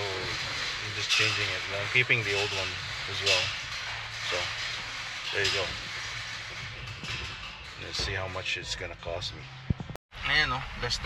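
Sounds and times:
man talking: 0:00.0 - 0:03.5, 0:04.3 - 0:04.5, 0:05.3 - 0:05.7, 0:07.8 - 0:09.5, 0:10.2 - 0:11.0.

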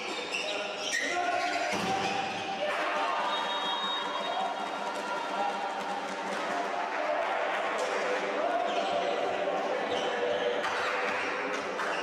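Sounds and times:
voices echoing in sports hall: 0:00.0 - 0:12.0.

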